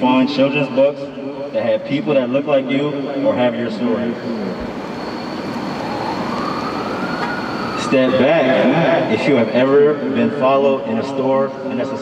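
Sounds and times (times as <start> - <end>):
distant siren wailing: 0.0 - 12.0
outdoor background rush: 0.0 - 12.0
thin steady high tone: 0.0 - 12.0.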